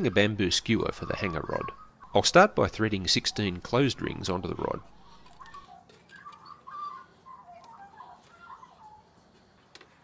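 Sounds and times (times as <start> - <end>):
faint bird chirps: 3.3 - 9.2.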